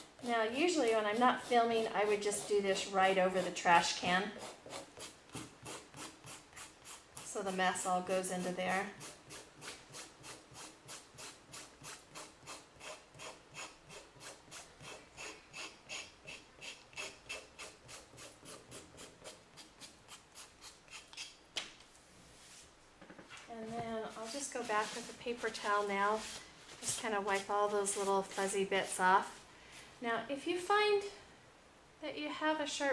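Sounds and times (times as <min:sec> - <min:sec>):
nail file rasping on paper edge: 0:00.0 - 0:03.8, 0:04.4 - 0:07.3, 0:08.4 - 0:21.4.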